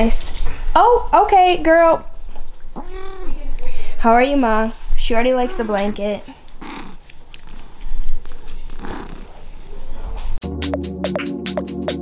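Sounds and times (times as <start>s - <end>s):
cat purring: 5.4s - 7.7s, 8.7s - 9.5s.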